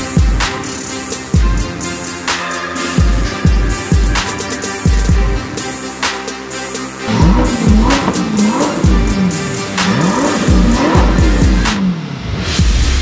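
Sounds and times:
background music with steady beat: 0.0s - 13.0s
car engine revving: 7.0s - 13.0s.

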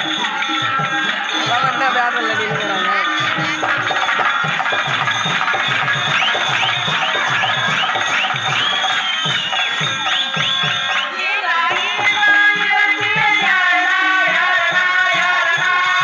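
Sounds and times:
steady drum beat: 0.0s - 16.0s.

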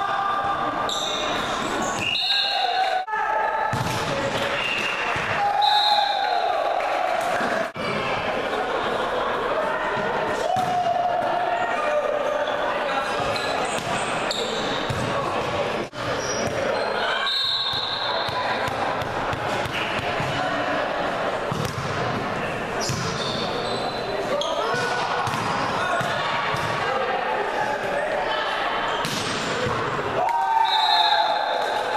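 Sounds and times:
busy gym noise: 0.0s - 31.9s
sneakers squeaking on hardwood floor: 22.8s - 24.9s.

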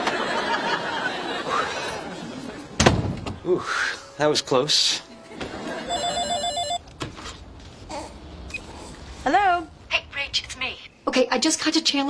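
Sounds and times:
electronic phone ringing: 5.7s - 6.8s.

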